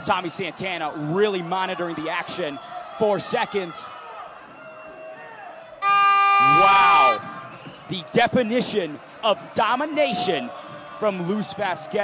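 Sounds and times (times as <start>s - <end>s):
loud steady horn: 5.8s - 7.3s.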